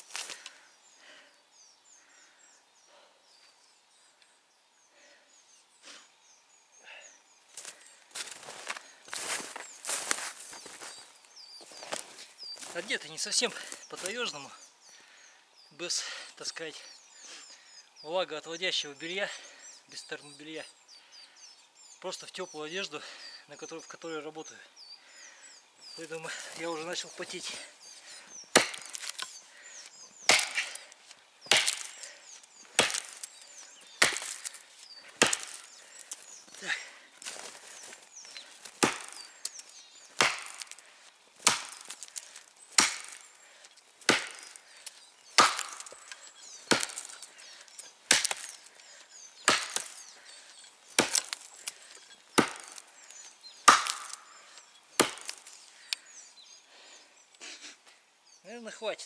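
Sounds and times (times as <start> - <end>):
axe chopping tree trunk: 28.5 - 29.3, 30.2 - 32.1, 32.7 - 33.4, 34.0 - 34.6, 35.2 - 35.7, 38.7 - 39.3, 40.2 - 40.8, 41.4 - 43.2, 44.0 - 44.6, 45.3 - 47.3, 48.0 - 48.7, 49.4 - 50.2, 50.9 - 52.9, 53.6 - 54.3, 54.9 - 55.6.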